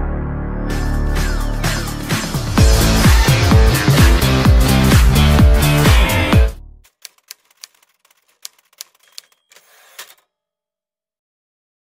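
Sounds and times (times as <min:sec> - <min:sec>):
electronic music with strong beat: 0:00.7 - 0:06.6
typewriter-like clicks: 0:06.9 - 0:10.2.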